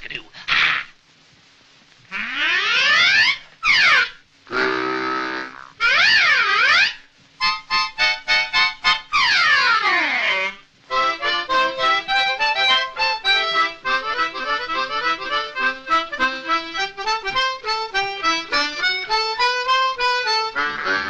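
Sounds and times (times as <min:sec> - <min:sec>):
harmonica playing: 0:02.7 - 0:21.0.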